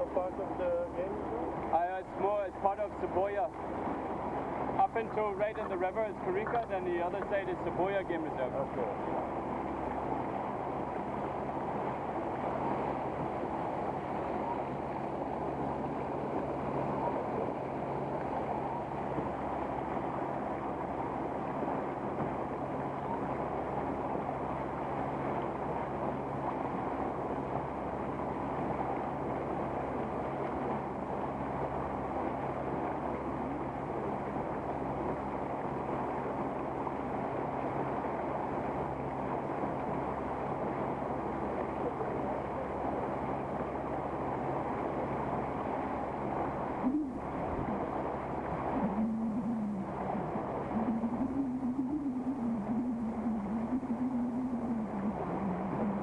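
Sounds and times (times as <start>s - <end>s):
outboard engine running: 0.0s - 56.0s
water splashing along hull: 0.0s - 56.0s
wavering tone: 14.3s - 19.4s, 46.7s - 56.0s.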